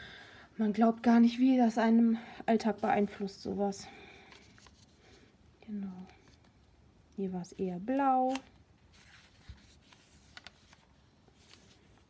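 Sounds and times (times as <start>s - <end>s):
paper page turning: 8.2s - 12.0s.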